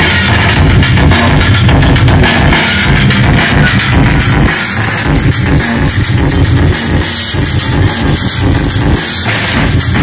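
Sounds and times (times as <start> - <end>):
drum kit hits: 0.0 - 10.0
modular synthesizer music: 0.0 - 10.0.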